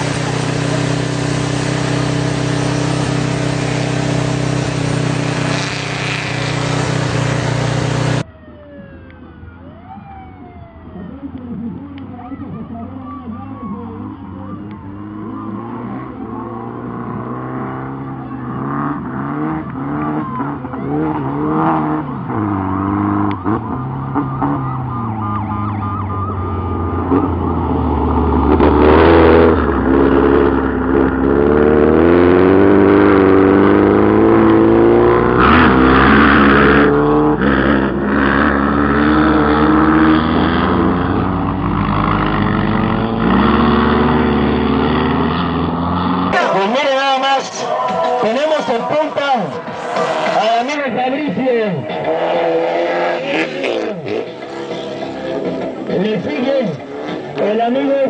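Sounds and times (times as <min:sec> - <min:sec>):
engine revving hard: 0:00.0 - 0:08.2, 0:14.5 - 0:25.1, 0:26.8 - 0:58.0.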